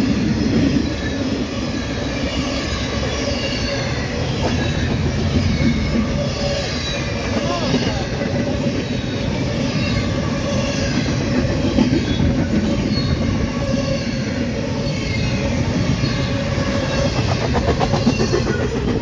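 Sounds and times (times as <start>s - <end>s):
rumble of train wheels on rail: 0.0s - 19.0s
high wheel squeal: 0.6s - 19.0s.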